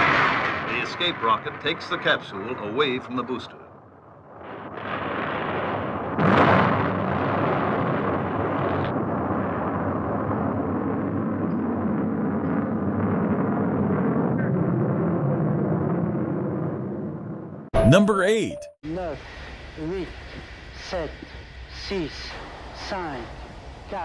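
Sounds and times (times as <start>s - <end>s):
roar of burning fireball: 0.0s - 2.0s, 4.0s - 17.7s
rocket explosion blast: 0.0s - 2.2s, 4.0s - 17.4s.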